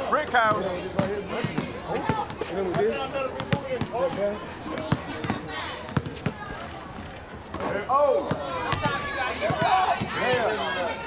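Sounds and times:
people talking: 0:00.0 - 0:11.0
basketball bouncing: 0:00.4 - 0:06.5, 0:07.5 - 0:10.6.

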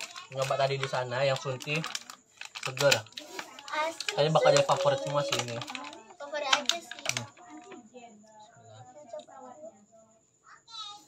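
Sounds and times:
plastic wrapping crackling: 0:00.0 - 0:07.8.

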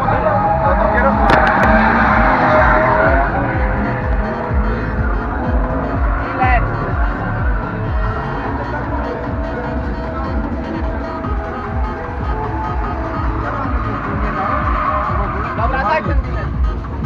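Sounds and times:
background music: 0:00.0 - 0:17.0
car engine running: 0:00.0 - 0:17.0
tyres squealing: 0:00.0 - 0:17.0
voices: 0:00.0 - 0:17.0.

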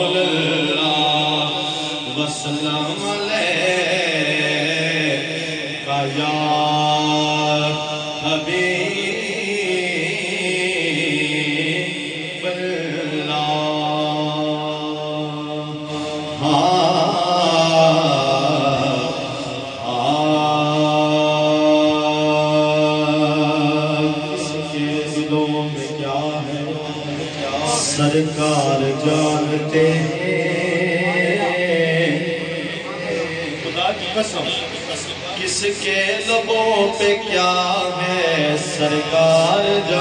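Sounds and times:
man singing unaccompanied: 0:00.0 - 0:34.4, 0:35.2 - 0:40.0.

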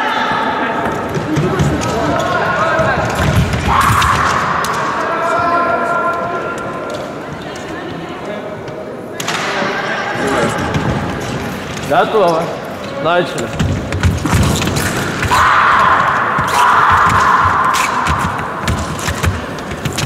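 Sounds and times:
echoing indistinct voices: 0:00.0 - 0:20.0.

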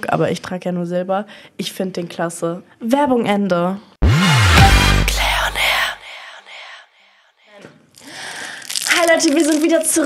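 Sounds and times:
rising whoosh: 0:04.0 - 0:06.6
faint breathy noise: 0:05.0 - 0:07.2.

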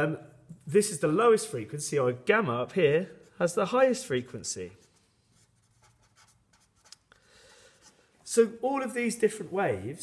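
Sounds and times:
felt-tip pen scratching on paper: 0:04.8 - 0:07.0.

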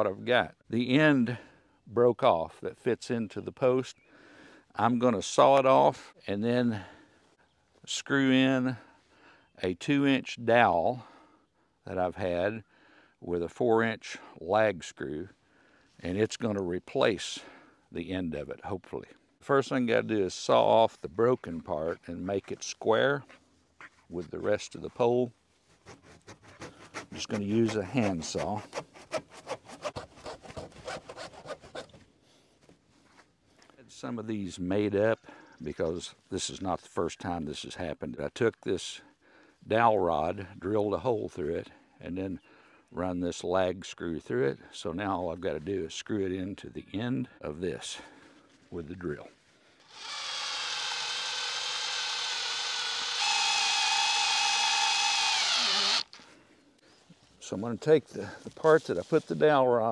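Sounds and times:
handsaw cutting wood: 0:25.8 - 0:32.0, 0:49.8 - 0:56.2
cordless drill motor whine: 0:49.8 - 0:56.2.

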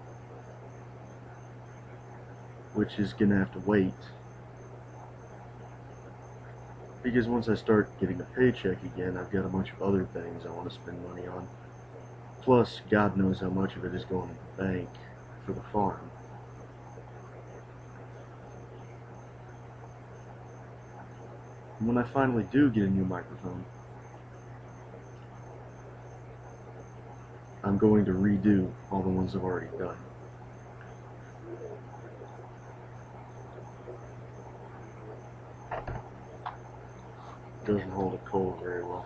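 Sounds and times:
microphone hum and hiss: 0:00.0 - 0:39.0.

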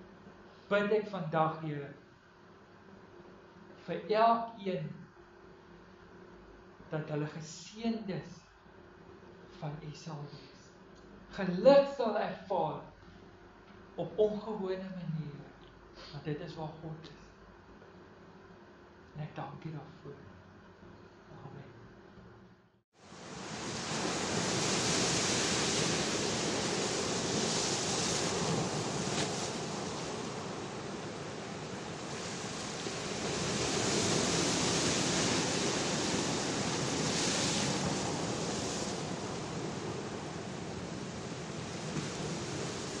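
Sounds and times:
sea waves breaking: 0:23.0 - 0:43.0.

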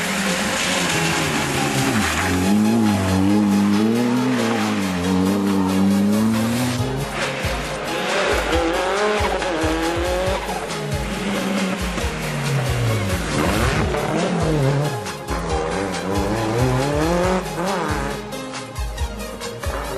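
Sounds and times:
rally car engines revving: 0:00.0 - 0:18.7.

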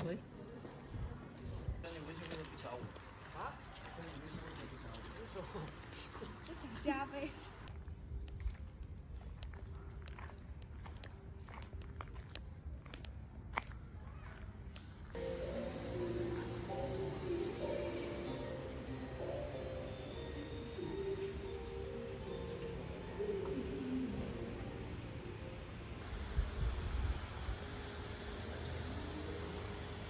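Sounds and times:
music: 0:15.2 - 0:26.0.

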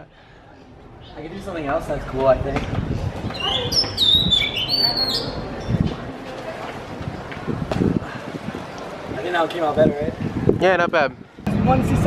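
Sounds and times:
bird whistled chirps: 0:03.3 - 0:05.4.

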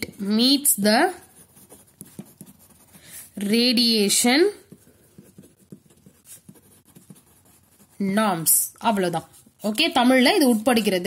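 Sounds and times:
pen scratching on paper: 0:01.2 - 0:03.6, 0:04.6 - 0:10.6.

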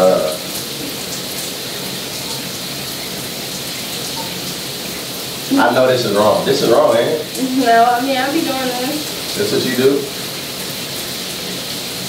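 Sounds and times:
shower spray on floor: 0:00.0 - 0:12.0.

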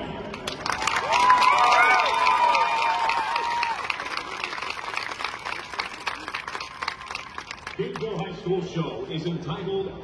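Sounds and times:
audience applauding: 0:00.3 - 0:08.2
high cheer: 0:00.6 - 0:07.6.

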